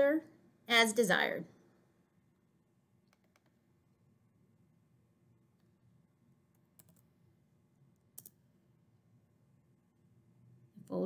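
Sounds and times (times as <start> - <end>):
faint keyboard keystrokes: 3.1 - 3.6, 6.5 - 7.1.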